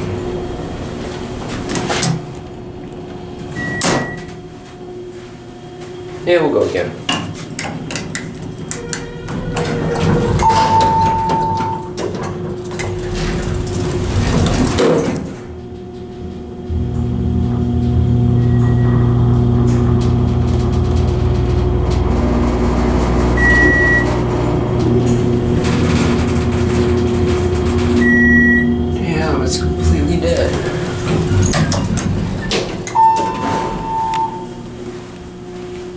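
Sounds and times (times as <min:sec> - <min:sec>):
elevator doors closing: 0:00.0 - 0:05.0, 0:06.0 - 0:35.9
elevator pump motor hum: 0:00.0 - 0:35.9
short electronic beeps: 0:23.4 - 0:24.2, 0:28.0 - 0:28.8, 0:33.0 - 0:34.5.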